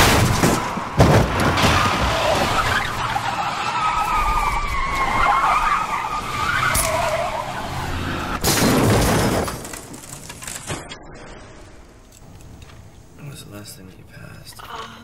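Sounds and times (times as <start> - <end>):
loud crash: 0.0 - 3.0, 8.4 - 11.0
car tyres screeching: 0.0 - 8.8.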